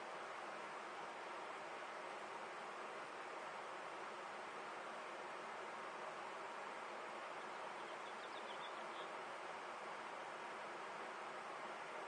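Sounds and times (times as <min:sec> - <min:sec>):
faint background hiss: 0:00.0 - 0:12.0.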